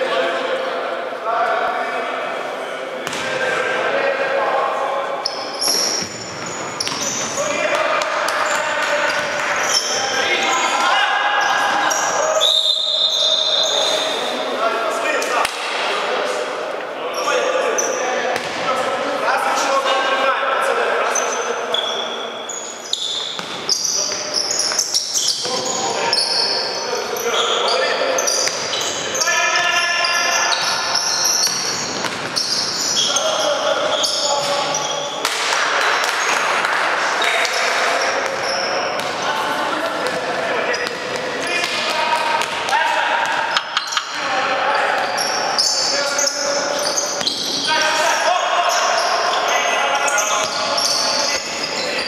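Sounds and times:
players calling out: 2.4s - 15.8s, 16.4s - 52.0s
sneakers squeaking: 3.0s - 3.4s, 5.2s - 14.5s, 17.1s - 18.9s, 21.0s - 36.6s, 37.2s - 52.0s
basketball bouncing on court: 6.0s - 7.3s, 31.4s - 32.5s, 38.2s - 39.3s.

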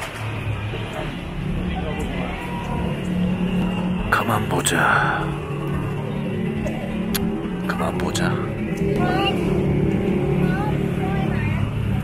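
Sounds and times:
people talking indistinctly: 0.9s - 12.0s.

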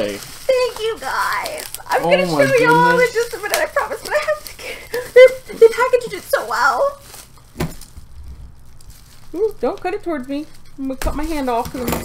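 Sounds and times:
handling bubble-wrapped package: 0.0s - 12.0s.

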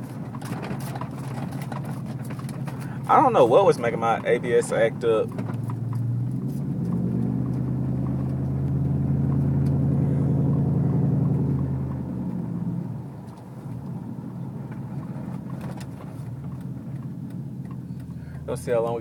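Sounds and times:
road and tyre noise: 0.0s - 19.0s
truck engine under throttle: 0.0s - 19.0s.

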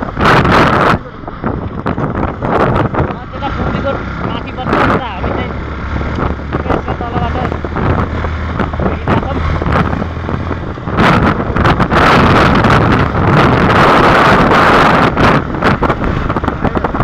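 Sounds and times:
vehicle engine hum: 0.0s - 17.0s
wind buffeting the microphone: 0.0s - 17.0s.

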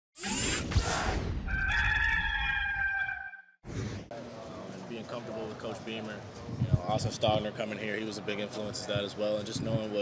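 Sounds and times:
rooster crowing: 1.5s - 3.5s.

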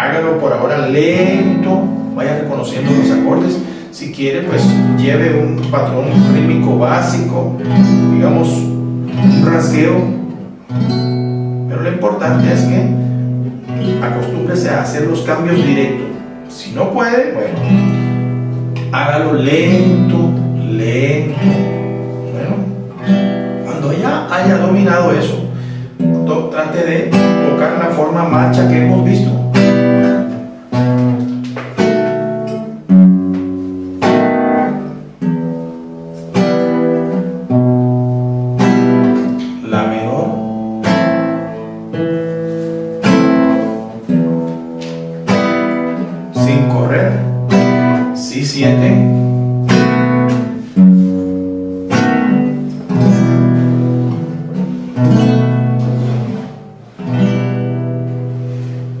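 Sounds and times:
classical guitar strumming chords: 0.0s - 59.0s.

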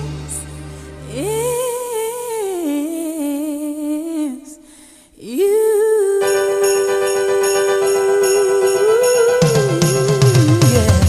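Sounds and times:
low backing: 0.0s - 2.4s.

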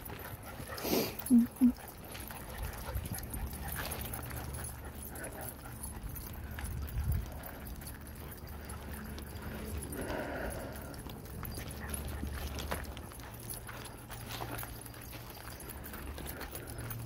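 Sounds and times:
footsteps on dirt trail: 0.0s - 17.0s
steady low rumble: 0.0s - 17.0s.

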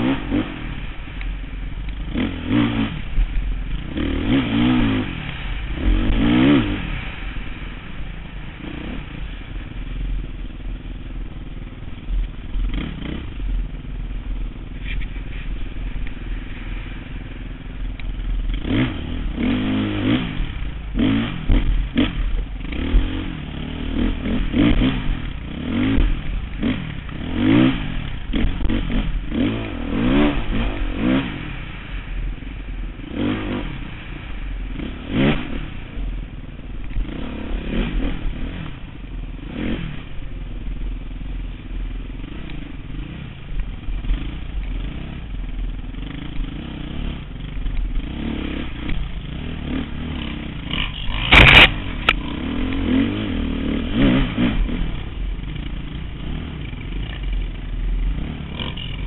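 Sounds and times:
dirt bike engine revving: 0.0s - 40.3s, 41.8s - 59.0s.

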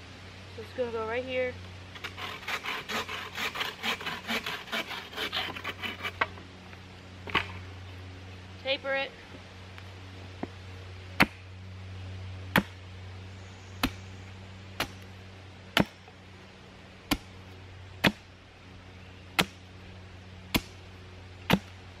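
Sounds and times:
hatchet chopping wooden stake: 11.2s - 11.4s, 12.5s - 12.8s, 13.8s - 14.0s, 14.8s - 15.1s, 15.7s - 16.1s, 17.1s - 18.3s, 19.3s - 19.7s, 20.5s - 21.8s.

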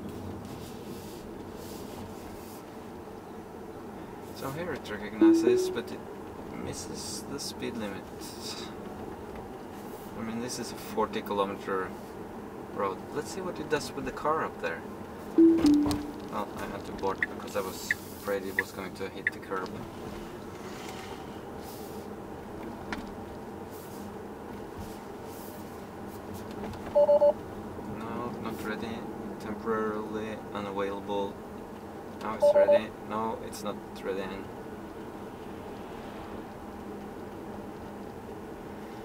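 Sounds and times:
tyre and road noise in car cabin: 0.0s - 5.2s, 6.0s - 39.0s.

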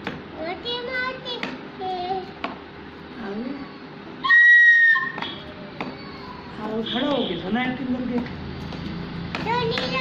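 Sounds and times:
shrill toy whistle note: 4.2s - 5.4s.

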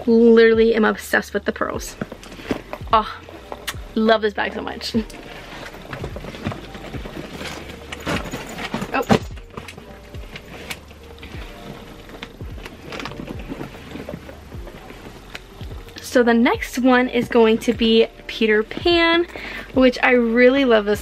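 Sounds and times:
background music: 0.0s - 21.0s
backpacks knocking and rustling: 1.9s - 4.1s, 5.0s - 20.1s.

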